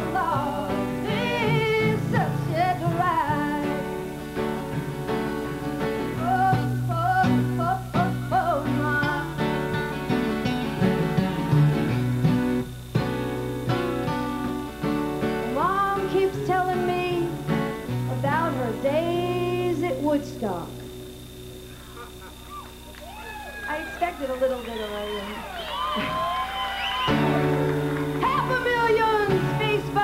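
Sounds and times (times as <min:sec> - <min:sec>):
woman singing: 0:00.0 - 0:04.0, 0:06.1 - 0:09.6, 0:15.5 - 0:20.8, 0:28.2 - 0:30.0
acoustic guitars strumming: 0:00.0 - 0:30.0.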